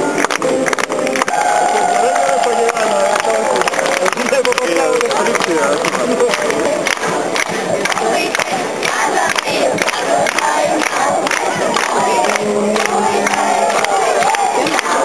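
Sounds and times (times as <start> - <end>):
sharp claps: 0.1 - 15.0.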